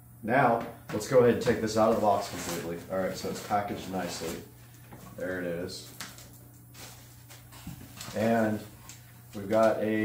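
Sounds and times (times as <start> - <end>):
steady low hum: 0.0 - 10.0
cardboard rustling and scraping: 0.9 - 9.7.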